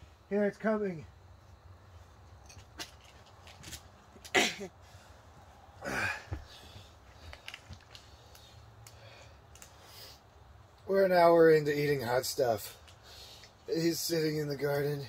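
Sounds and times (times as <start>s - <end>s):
person crying out in pain: 5.8s - 6.4s.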